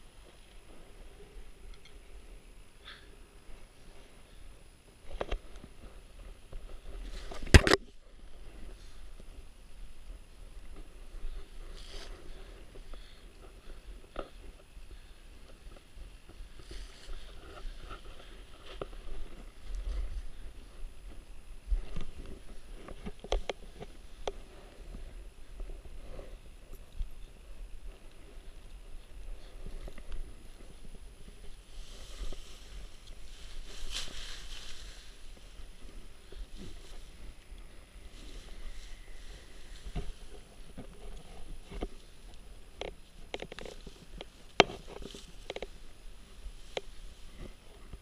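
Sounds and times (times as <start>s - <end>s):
light rustles and ticks: 0.0s - 48.0s
wind rumbling on microphone: 0.0s - 48.0s.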